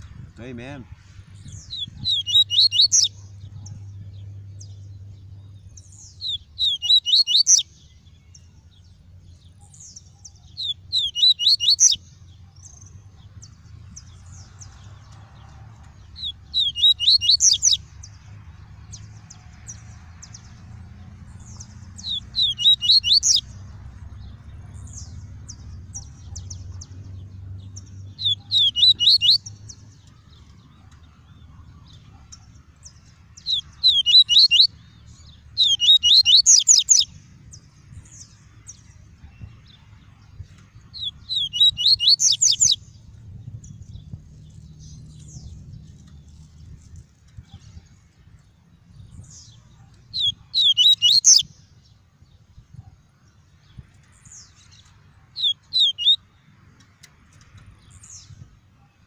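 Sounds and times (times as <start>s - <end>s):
bird song high sweeping notes: 1.4s - 3.3s, 5.7s - 8.1s, 16.1s - 17.8s, 21.4s - 23.5s, 28.2s - 29.7s, 33.4s - 37.1s, 40.9s - 42.9s, 50.2s - 51.5s, 55.4s - 56.2s
faint bird chirps: 1.4s - 4.7s, 5.5s - 8.6s, 9.4s - 13.6s, 21.4s - 23.4s, 27.8s - 32.5s, 33.4s - 37.1s, 38.7s - 42.8s, 49.1s - 51.5s, 54.0s - 56.3s.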